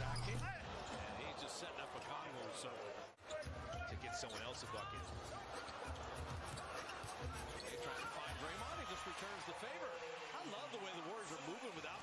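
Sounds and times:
sneakers squeaking on floor: 0:00.0 - 0:00.4.

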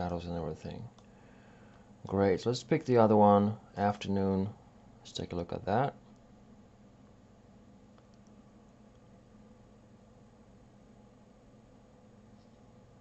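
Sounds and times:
faint low hum: 0:00.0 - 0:13.0
faint clicks: 0:07.9 - 0:09.2.

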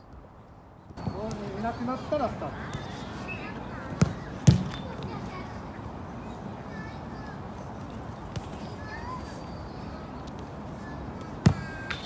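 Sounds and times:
soccer ball kicked: 0:02.7 - 0:03.0, 0:04.0 - 0:05.0, 0:11.2 - 0:12.0.

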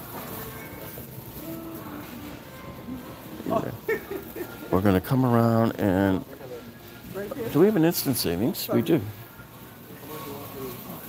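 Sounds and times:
faint background music: 0:00.0 - 0:11.0
shopping cart rolling on concrete: 0:00.0 - 0:11.0.

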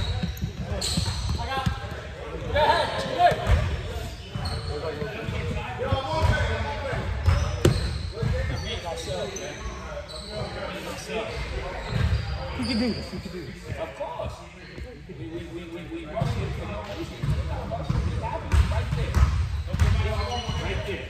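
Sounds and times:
players' voices: 0:00.0 - 0:21.0
basketball bouncing on gym floor: 0:07.2 - 0:08.5, 0:17.2 - 0:20.7.

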